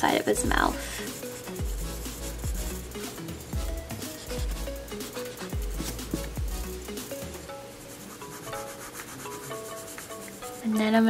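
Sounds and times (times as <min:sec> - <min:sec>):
faint background music: 0:00.0 - 0:11.0
pencil scratching on paper: 0:00.7 - 0:07.2, 0:07.8 - 0:11.0.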